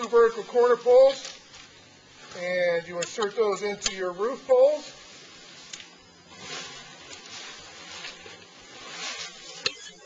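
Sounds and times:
rustling tent poles and fabric: 4.6 - 10.0.

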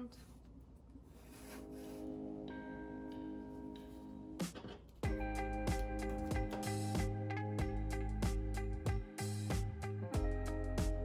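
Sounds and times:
sustained chord music: 5.0 - 11.0.

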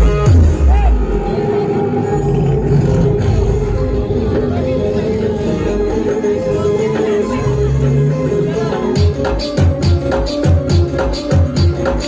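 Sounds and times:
loud music over sound system: 0.0 - 12.0.

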